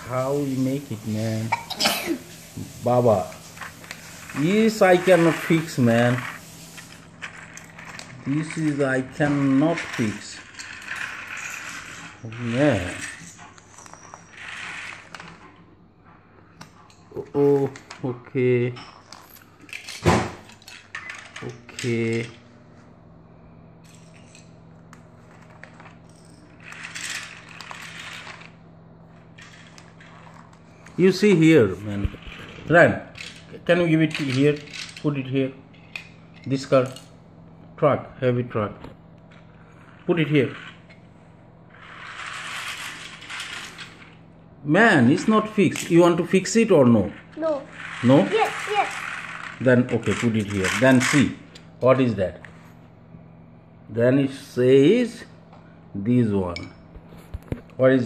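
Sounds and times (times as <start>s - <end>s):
plastic toy gears whirring: 2.9s - 15.6s, 18.9s - 22.3s, 25.2s - 37.0s, 39.6s - 41.0s, 41.7s - 44.2s, 45.0s - 51.5s.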